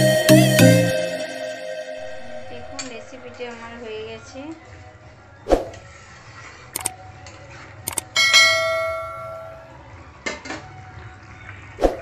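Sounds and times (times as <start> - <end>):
bell chime: 0.0 - 3.9, 8.2 - 9.8.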